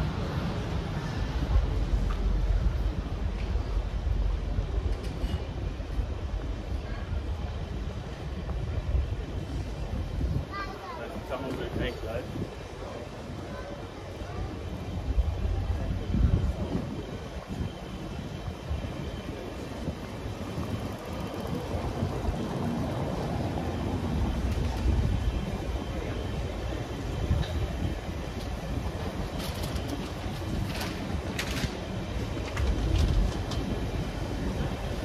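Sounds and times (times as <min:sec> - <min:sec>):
traffic rumble: 0:00.0 - 0:35.0.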